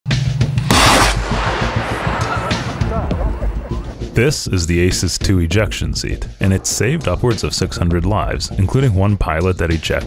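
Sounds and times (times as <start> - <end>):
background music: 0.1 - 10.0
ejection seat blast: 0.6 - 4.1.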